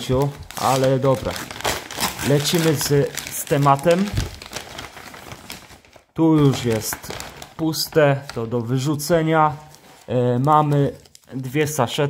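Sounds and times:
packaging rustling and clicking: 0.0 - 8.6.

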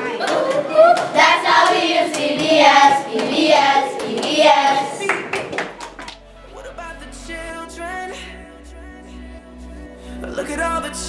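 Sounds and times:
children singing: 0.0 - 5.3
children clapping: 0.0 - 6.2.

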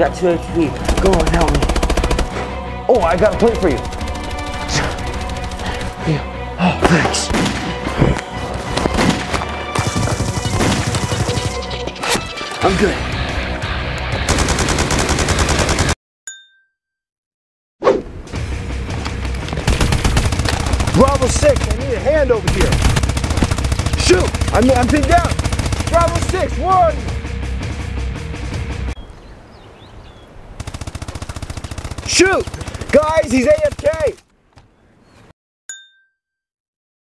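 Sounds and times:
automatic rifle fire: 0.9 - 2.4, 14.3 - 16.0, 19.7 - 21.8, 22.5 - 26.4
bell-like ding: 16.3 - 17.0, 35.7 - 36.5.

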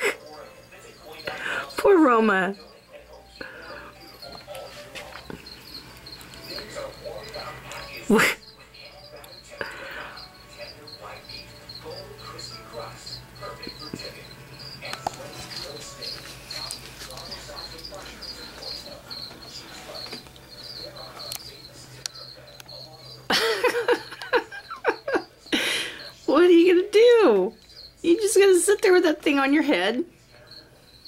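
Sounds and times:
cricket chirping: 0.0 - 31.0.

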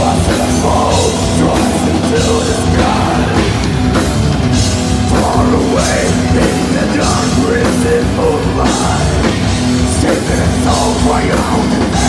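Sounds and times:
bass guitar: 0.0 - 12.0
distorted electric guitars: 0.0 - 12.0
drum kit with crashing cymbals: 0.0 - 12.0.

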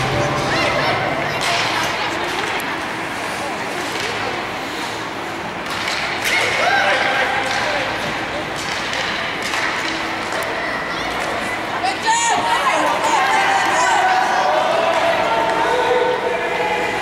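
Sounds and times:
spectators' voices and calls: 0.0 - 17.0
clacks of sticks and puck: 1.2 - 11.6.

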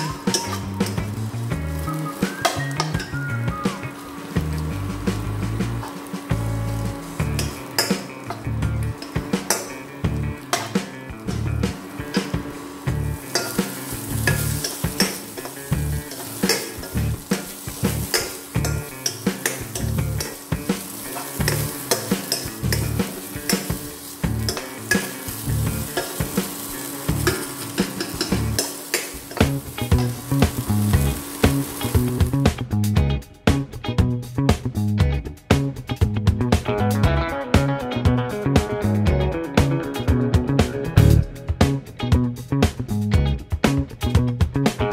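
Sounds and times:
spoon scraping and clinking on pan: 0.0 - 1.1, 7.4 - 9.9, 13.2 - 30.2
okra sizzling in hot oil: 0.0 - 32.7.

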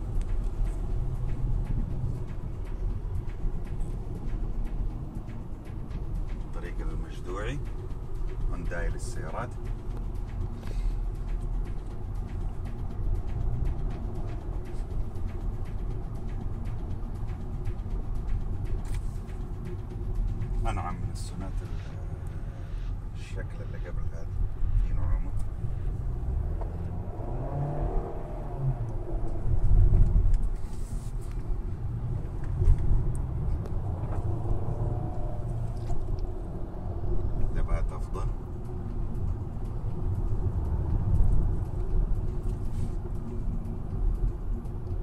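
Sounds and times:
car engine and tyre rumble: 0.0 - 45.0.

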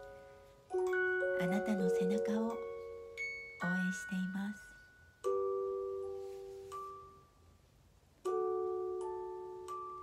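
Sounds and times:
soft ringing chords: 0.0 - 10.0.

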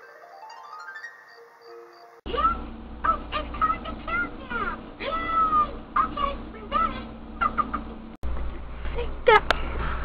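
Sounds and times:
children's tv music: 1.6 - 7.6.

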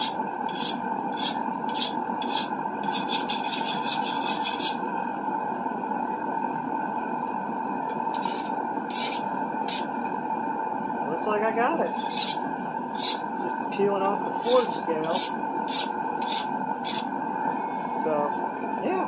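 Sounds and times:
file stroking steel blade: 0.0 - 4.8, 8.2 - 9.9, 11.9 - 12.4, 13.0 - 13.3, 14.2 - 17.1
gas forge burner roaring: 0.0 - 19.0.

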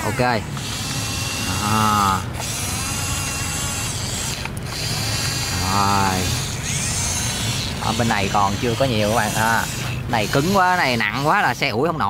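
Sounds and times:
blade pushing soil: 0.0 - 12.0
toy motors and gearboxes whirring: 0.0 - 12.0.

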